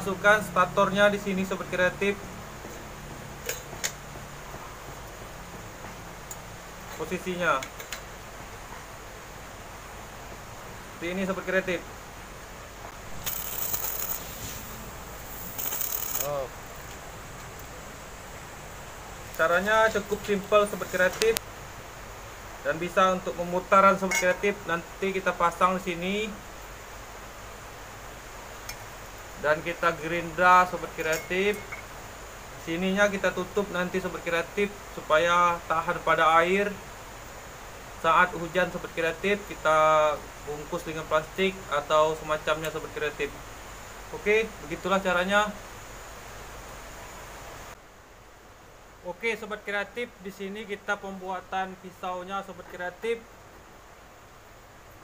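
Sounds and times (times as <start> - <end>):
low background hiss: 0.0 - 55.0
steady background noise: 0.0 - 55.0.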